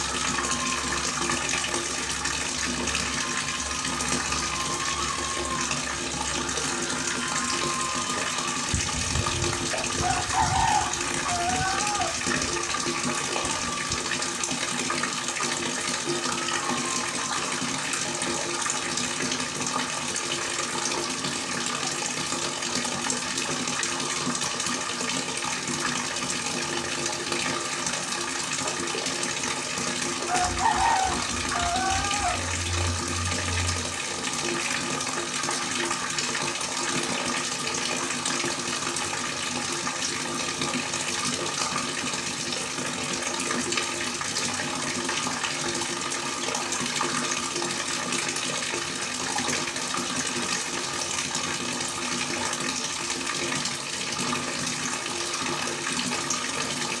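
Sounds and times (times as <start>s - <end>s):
water stream splashing into pond: 0.0s - 57.0s.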